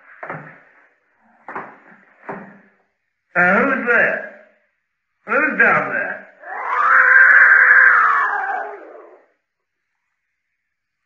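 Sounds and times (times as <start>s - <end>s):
cat yowling: 6.4s - 9.3s.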